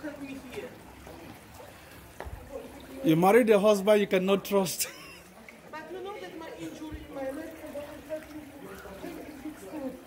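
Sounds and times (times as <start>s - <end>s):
stream water trickling over rocks: 0.0s - 10.0s.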